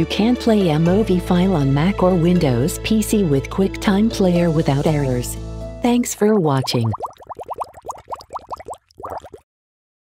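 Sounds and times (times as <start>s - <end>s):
short rising bloops: 6.6s - 9.4s.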